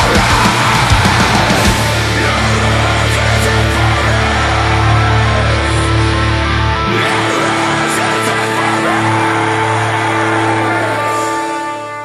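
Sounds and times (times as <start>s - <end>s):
distorted electric guitars and bass chord: 0.0s - 12.0s.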